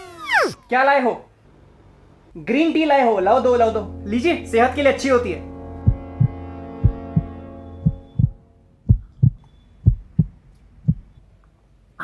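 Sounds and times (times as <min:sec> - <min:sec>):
held tone: 0:00.0 - 0:00.7
heartbeat thumps: 0:05.8 - 0:11.2.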